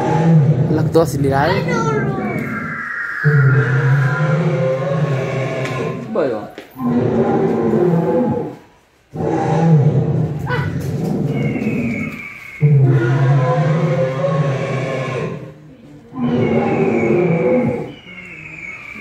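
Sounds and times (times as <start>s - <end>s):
dinosaur roars: 0.0s - 6.2s, 6.8s - 19.0s.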